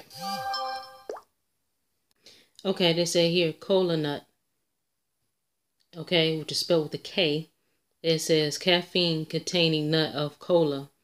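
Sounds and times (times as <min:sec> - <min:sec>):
electronic chime: 0:00.0 - 0:01.2.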